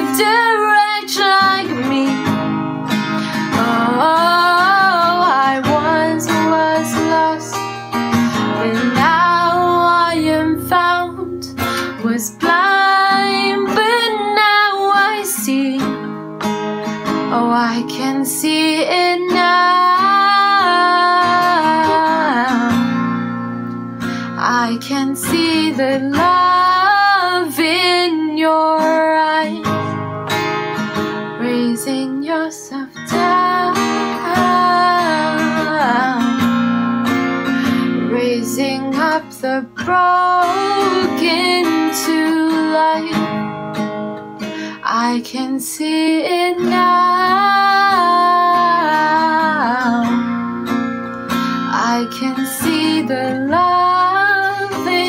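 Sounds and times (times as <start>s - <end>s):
woman singing worship song: 0.0s - 2.2s, 3.4s - 7.6s, 8.4s - 15.9s, 17.3s - 22.8s, 24.4s - 29.6s, 31.4s - 36.4s, 37.7s - 43.3s, 44.8s - 50.2s, 51.7s - 55.0s
strummed acoustic guitar: 0.0s - 55.0s.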